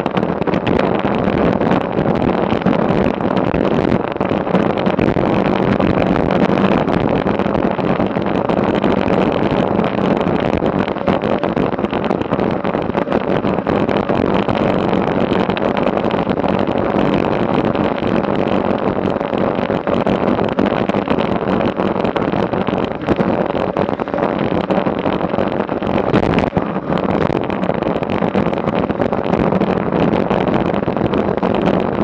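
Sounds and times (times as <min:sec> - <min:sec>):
bike tyres rolling on asphalt: 0:00.0 - 0:32.0
wind rushing over microphone: 0:00.0 - 0:32.0.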